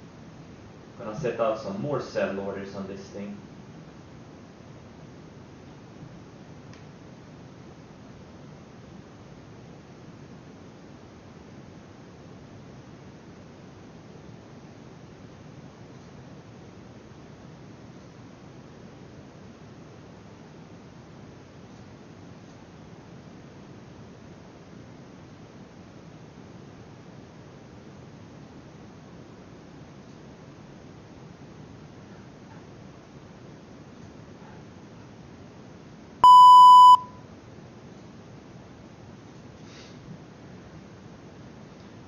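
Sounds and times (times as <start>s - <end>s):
room noise with hiss: 0.0s - 42.0s.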